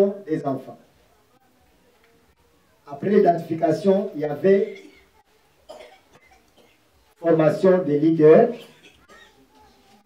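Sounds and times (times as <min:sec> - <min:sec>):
short faint cough: 0:04.7 - 0:06.8, 0:08.6 - 0:09.4.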